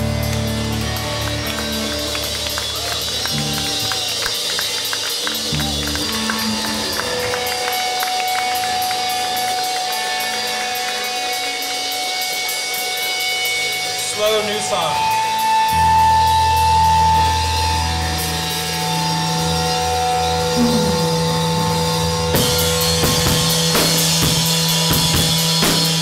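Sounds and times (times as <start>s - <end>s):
live rock band playing: 0.0s - 26.0s
low bass notes: 0.0s - 26.0s
held high note: 19.6s - 23.7s.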